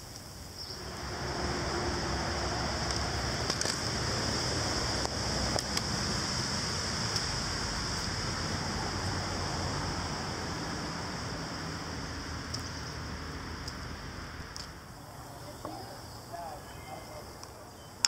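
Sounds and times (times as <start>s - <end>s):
highway traffic roar: 0.0s - 18.0s.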